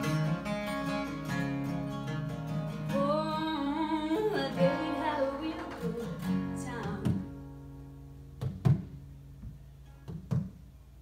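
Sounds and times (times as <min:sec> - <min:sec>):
acoustic guitars strumming chords: 0:00.0 - 0:10.8.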